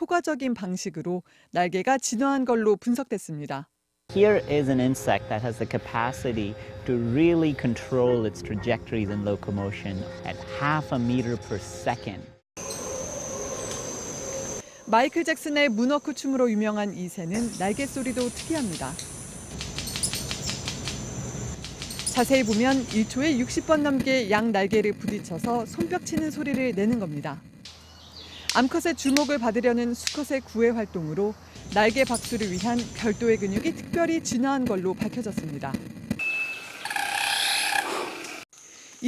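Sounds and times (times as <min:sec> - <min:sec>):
high insect trill: 0:04.1 - 0:08.1, 0:12.6 - 0:24.4, 0:27.7 - 0:33.8, 0:36.3 - 0:39.0
wing feather whistle: 0:12.6 - 0:14.8, 0:36.2 - 0:38.4
bird wing snaps: 0:18.1 - 0:23.1, 0:31.6 - 0:33.3.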